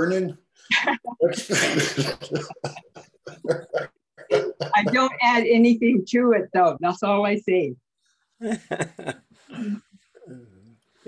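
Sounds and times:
person laughing: 0:00.7 - 0:05.2, 0:08.4 - 0:09.2.

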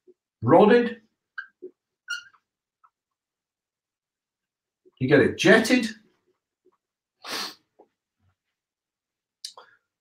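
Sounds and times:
man's sharp nasal exhale: 0:07.2 - 0:07.7.

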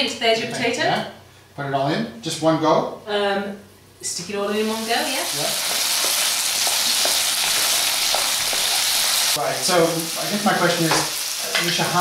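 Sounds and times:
potatoes sizzling in oil: 0:04.5 - 0:12.0.

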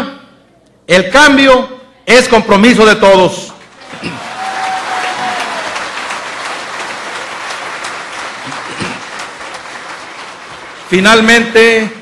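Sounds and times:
audience applauding: 0:03.6 - 0:11.8.

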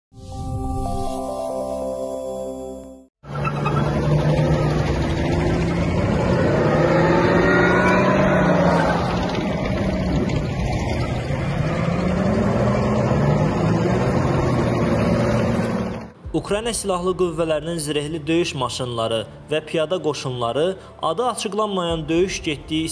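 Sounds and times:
tracked vehicle engine running: 0:03.2 - 0:16.2.

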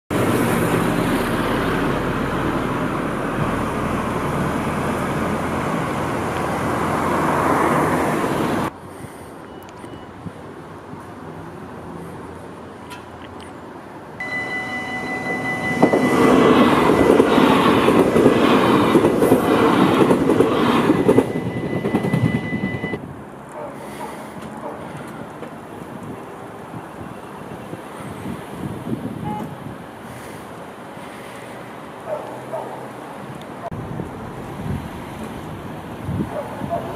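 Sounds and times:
train rolling rumble: 0:00.1 - 0:08.8, 0:14.2 - 0:30.9, 0:33.4 - 0:36.9
outdoor background noise: 0:00.1 - 0:36.9
electric train whine: 0:14.2 - 0:23.0.

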